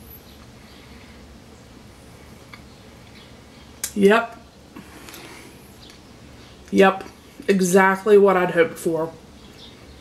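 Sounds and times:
person speaking: 3.8 - 5.4, 6.7 - 9.2.

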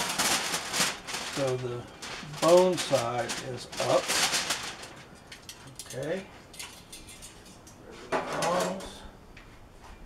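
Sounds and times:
aluminium foil crinkling: 0.0 - 7.7.

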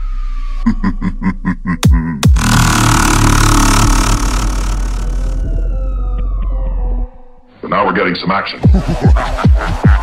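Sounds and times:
heavy dubstep music: 1.8 - 5.5.

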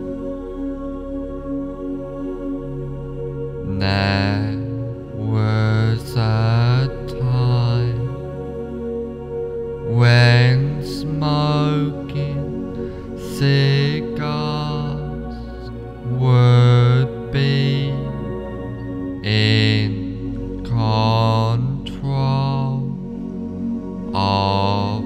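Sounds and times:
low voice chanting wordlessly: 0.0 - 25.0
steady drone: 0.0 - 25.0.

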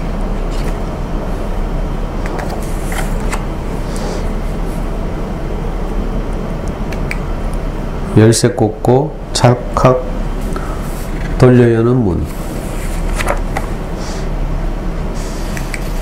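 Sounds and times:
low hum with hiss: 0.0 - 16.0.

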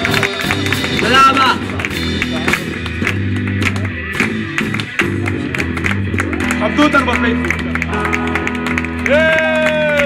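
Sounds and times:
drum kit and cymbal hits: 0.0 - 6.1
bass guitar low notes: 0.0 - 10.0
electric guitars: 0.0 - 10.0.

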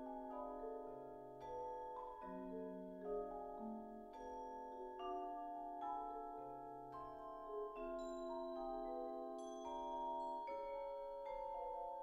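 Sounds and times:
vibraphone and marimba music: 0.0 - 12.0.

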